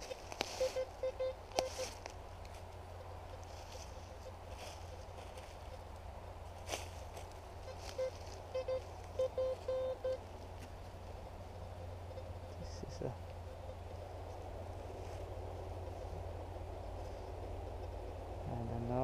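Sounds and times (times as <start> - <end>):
metal detector beeps: 0.0 - 2.0, 7.6 - 10.2
leaves rustling: 0.0 - 19.0.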